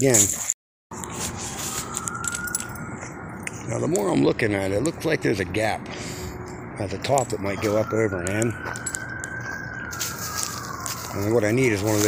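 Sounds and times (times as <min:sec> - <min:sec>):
siren wailing: 0:01.0 - 0:12.0.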